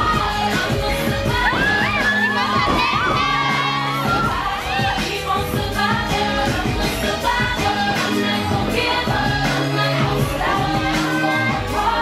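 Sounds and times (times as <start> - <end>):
young women shouting and cheering: 0.0 - 6.5
loud dance music: 0.0 - 12.0.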